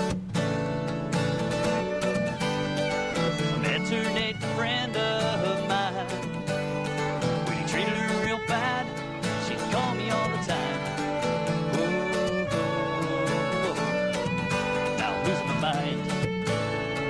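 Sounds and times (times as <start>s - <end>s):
strummed acoustic guitar: 0.0s - 17.0s
fiddle playing: 1.1s - 17.0s.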